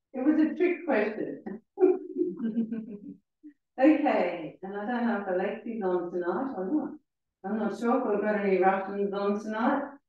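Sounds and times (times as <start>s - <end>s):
woman speaking: 0.2s - 2.6s, 3.8s - 9.9s
woman laughing softly: 1.8s - 3.2s.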